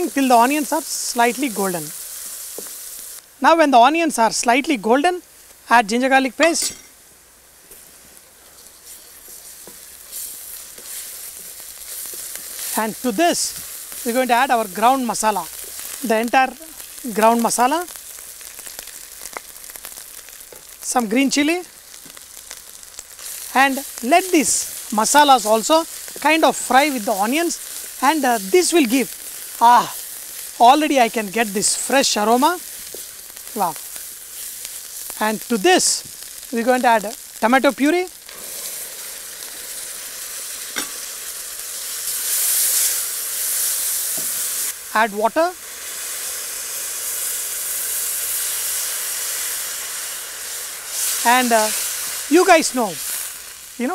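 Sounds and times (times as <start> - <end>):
food sizzling in oil: 0.0 - 53.9.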